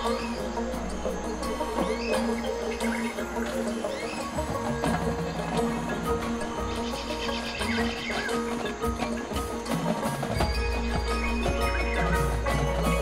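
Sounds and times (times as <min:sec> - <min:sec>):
mallet percussion notes: 0:00.0 - 0:13.0.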